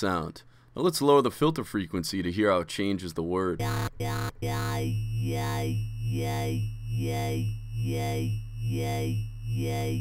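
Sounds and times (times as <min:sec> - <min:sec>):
wobble bass synth: 0:03.6 - 0:10.0.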